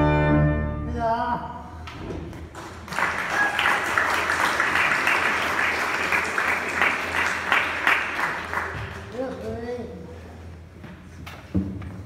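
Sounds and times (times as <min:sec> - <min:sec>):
congregation applauding: 0:02.5 - 0:09.4.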